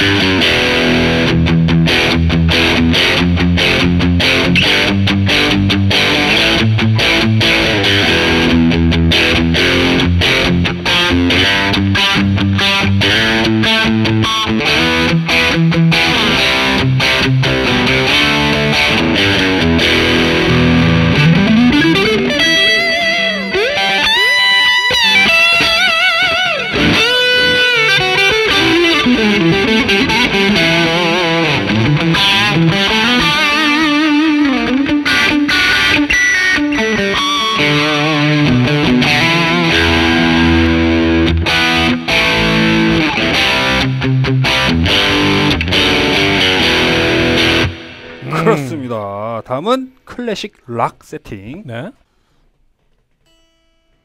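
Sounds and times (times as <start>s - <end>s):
distorted electric guitar riffs: 0.0s - 50.1s, 52.9s - 54.0s.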